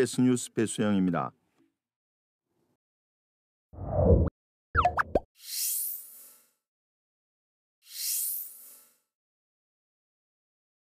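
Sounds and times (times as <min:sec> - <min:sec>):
pitched bloop: 0:04.8 - 0:05.3.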